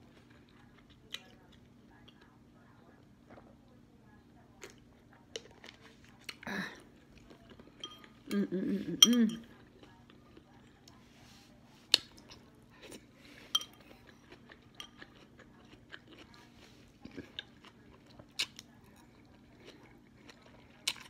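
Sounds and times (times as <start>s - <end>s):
chewing noodles: 4.6s - 8.4s, 11.9s - 21.0s
metal fork clinking on a bowl: 7.8s - 9.6s, 13.5s - 15.3s.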